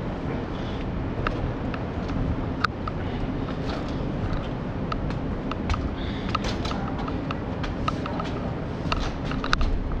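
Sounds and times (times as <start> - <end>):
urban background rumble: 0.0 - 10.0.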